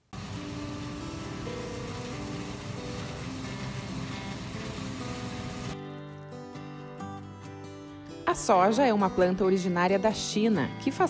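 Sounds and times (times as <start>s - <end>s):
background music: 0.2s - 11.0s.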